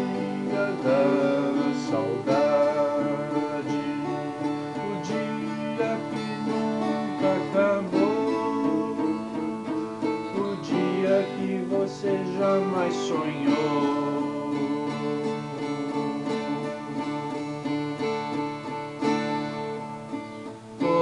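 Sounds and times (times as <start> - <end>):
acoustic guitar strummed: 0.0 - 21.0.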